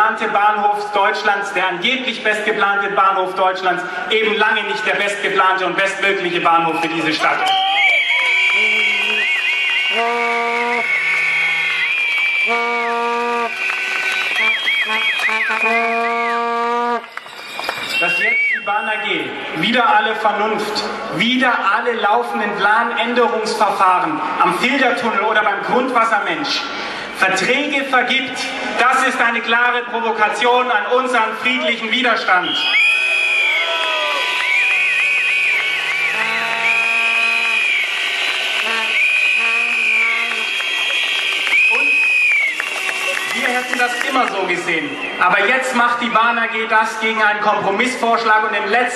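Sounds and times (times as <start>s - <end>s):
crowd noise: 0.0s - 48.9s
rising and falling whistles: 7.4s - 16.4s, 17.0s - 19.3s, 32.4s - 45.4s
horn blowing a steady note: 8.4s - 19.5s, 34.4s - 45.2s.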